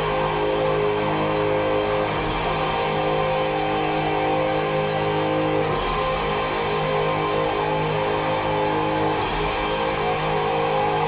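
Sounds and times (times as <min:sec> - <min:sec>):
distorted electric guitar chords: 0:00.0 - 0:11.0
live hard rock band: 0:00.0 - 0:11.0.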